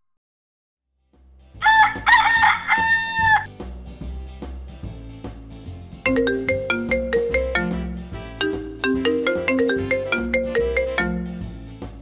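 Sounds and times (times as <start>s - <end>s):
phone ringtone melody: 6.1s - 11.5s.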